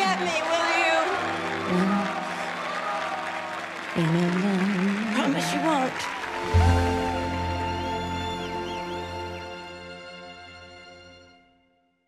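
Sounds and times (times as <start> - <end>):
audience applauding: 0.0 - 10.8.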